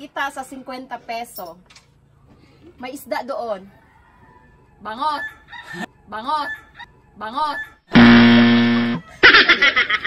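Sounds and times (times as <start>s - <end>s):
electronic wrong-answer buzzer: 8.0s - 9.0s
high-pitched laughter: 9.0s - 10.0s.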